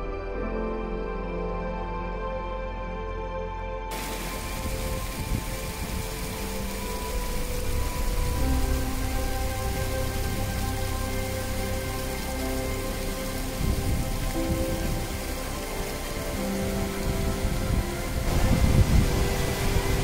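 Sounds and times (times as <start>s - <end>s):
soft background music: 0.0s - 20.0s
fast rocky stream: 3.9s - 20.0s
waterfall pouring onto rocks: 3.9s - 20.0s.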